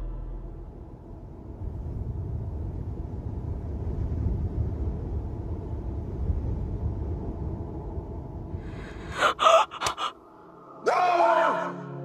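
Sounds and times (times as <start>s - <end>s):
people gasping: 8.7s - 10.2s.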